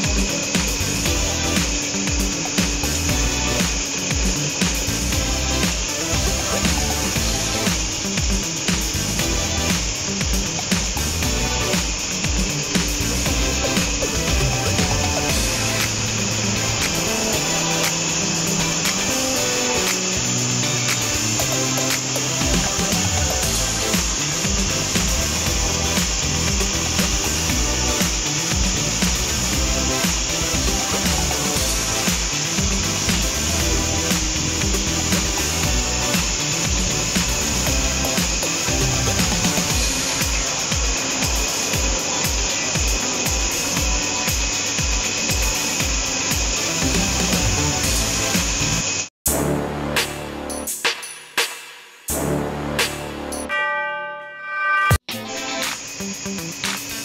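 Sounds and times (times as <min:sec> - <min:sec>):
background music with beat: 0:00.0 - 0:57.0.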